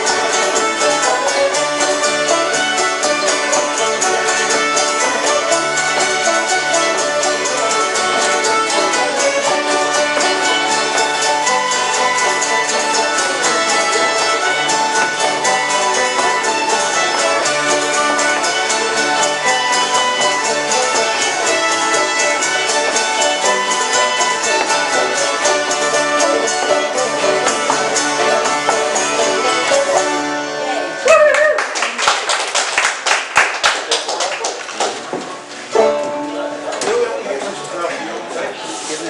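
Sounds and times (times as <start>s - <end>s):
old-time string band playing: 0.0s - 31.0s, 34.9s - 39.0s
hand clapping: 31.1s - 35.2s.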